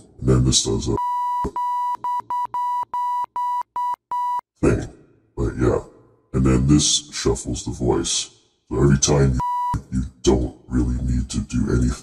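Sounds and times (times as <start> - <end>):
censor bleep beeps: 1.0 - 4.4, 9.4 - 9.8.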